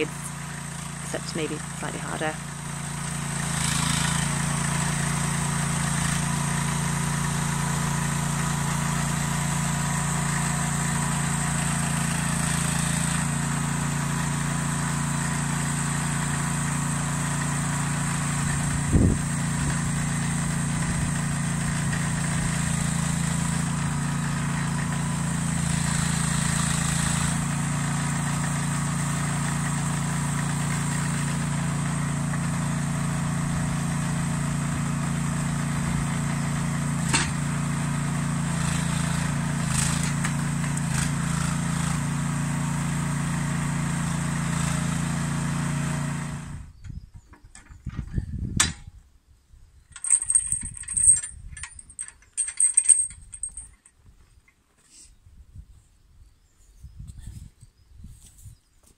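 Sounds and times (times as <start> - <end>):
small engine running: 0.0 - 46.9.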